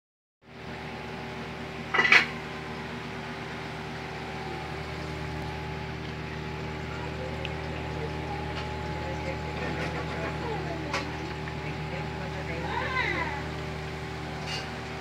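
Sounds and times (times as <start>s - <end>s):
aquarium pump humming: 0.5s - 15.0s.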